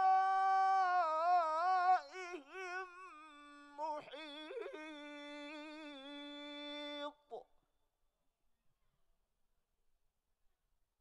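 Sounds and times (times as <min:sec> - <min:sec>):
man reciting in long sung note: 0:00.0 - 0:07.4.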